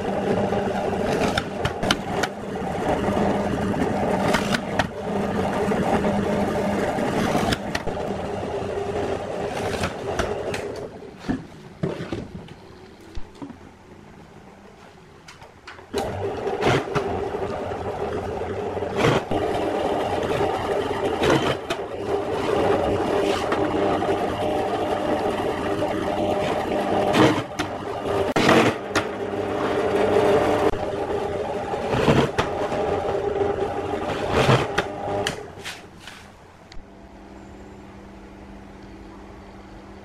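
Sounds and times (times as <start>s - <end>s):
drill press motor running: 15.9s - 35.5s.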